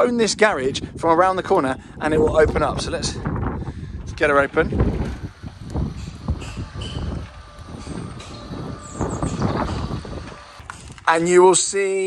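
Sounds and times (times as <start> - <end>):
roller garage door opening: 4.3 - 11.4.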